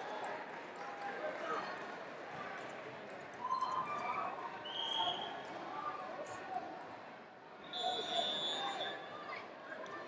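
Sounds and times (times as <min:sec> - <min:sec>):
voices calling out in a hall: 0:03.3 - 0:10.0.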